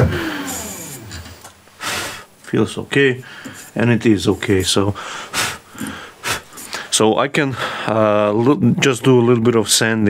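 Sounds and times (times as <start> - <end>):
lathe tool cutting wood: 0.0 - 1.4.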